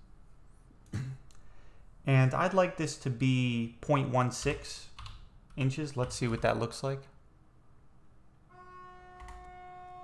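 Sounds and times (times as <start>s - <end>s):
faint steady pitched tone: 8.5s - 10.0s.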